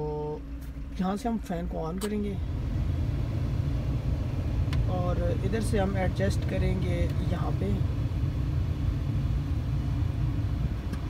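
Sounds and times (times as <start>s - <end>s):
car engine idling: 0.0s - 11.0s
small click: 2.0s - 2.2s.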